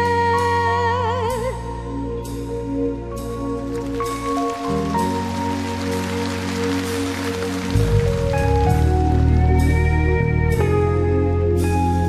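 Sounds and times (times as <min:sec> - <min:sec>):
deep bass: 0:00.0 - 0:12.0
sustained keyboard chords: 0:01.8 - 0:12.0.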